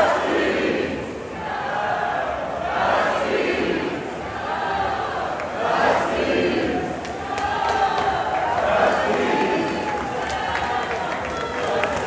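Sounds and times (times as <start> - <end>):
crowd talking and shouting: 0.0 - 12.0
scattered handclaps: 6.9 - 12.0.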